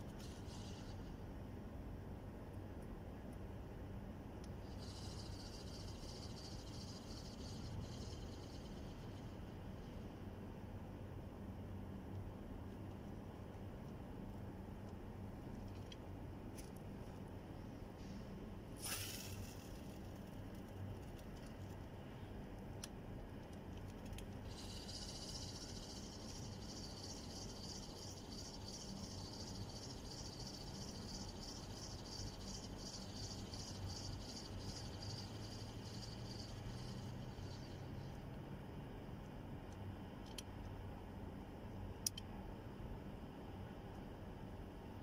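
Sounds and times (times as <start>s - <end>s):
fishing reel whirring: 0.0s - 1.2s, 4.6s - 10.0s, 18.8s - 20.1s, 24.4s - 38.2s.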